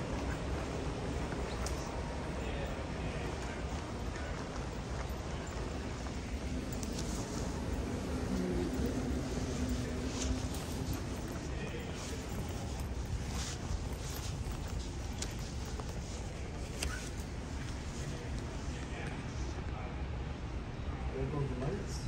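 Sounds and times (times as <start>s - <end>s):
train approaching in tunnel: 0.0s - 22.0s.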